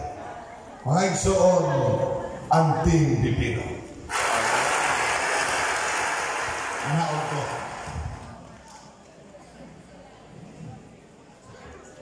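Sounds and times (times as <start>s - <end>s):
crowd applauding: 4.1s - 8.5s.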